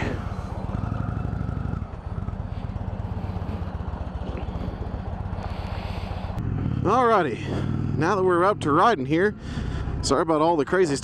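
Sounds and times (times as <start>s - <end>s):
motorcycle engine idling: 0.0s - 10.8s
motorcycle riding at speed: 0.0s - 11.0s.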